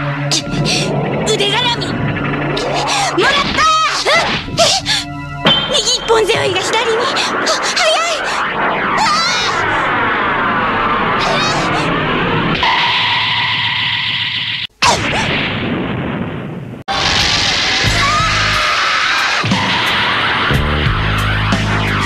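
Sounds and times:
dramatic soundtrack music: 0.0 - 14.7.

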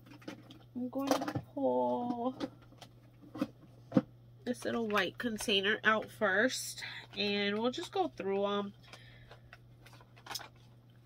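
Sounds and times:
plastic compacts clicking and rustling: 0.0 - 6.2, 6.8 - 11.0
low steady hum: 0.0 - 11.0.

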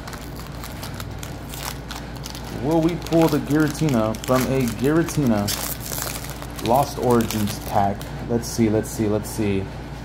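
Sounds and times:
foil wrapper crinkling and tearing: 0.0 - 8.1.

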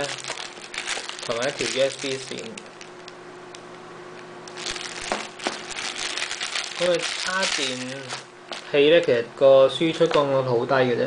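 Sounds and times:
paper leaflets rustling: 0.0 - 2.9, 4.5 - 9.2
plastic wrap crinkling: 0.0 - 3.2, 4.4 - 9.2.

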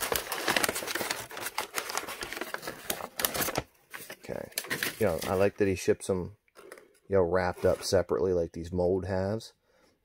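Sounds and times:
wrapping paper crinkling: 0.0 - 5.5.

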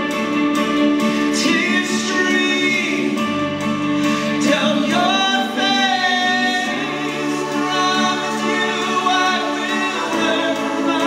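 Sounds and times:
musical accompaniment: 0.0 - 11.0
man singing into a microphone: 1.2 - 11.0.

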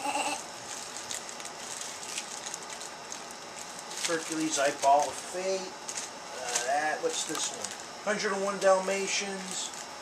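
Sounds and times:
plastic bags crinkling: 0.5 - 10.0.

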